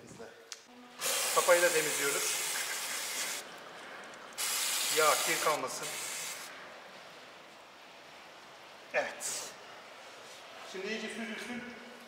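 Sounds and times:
aerosol spray hissing: 1.0s - 3.4s, 4.4s - 6.5s.

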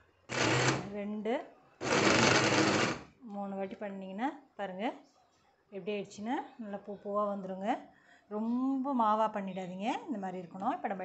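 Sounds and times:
mixer grinder motor whirring: 0.3s - 0.9s, 1.8s - 3.1s.

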